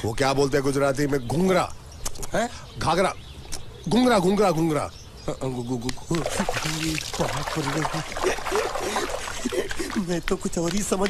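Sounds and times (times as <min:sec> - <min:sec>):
man talking: 0:03.8 - 0:11.0
water splashing in a tub: 0:06.1 - 0:10.1.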